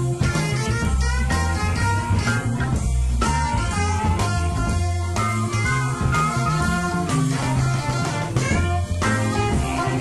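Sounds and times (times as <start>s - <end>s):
electric blues band playing: 0.0s - 10.0s
lead guitar: 0.0s - 10.0s.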